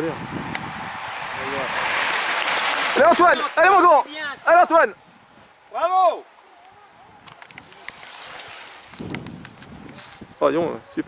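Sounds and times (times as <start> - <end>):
bicycles whooshing past: 0.0 - 5.7, 6.9 - 10.8.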